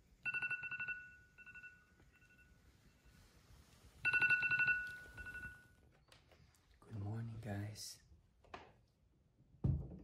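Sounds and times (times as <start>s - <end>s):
phone alarm beeping: 0.2s - 2.6s, 4.0s - 5.8s.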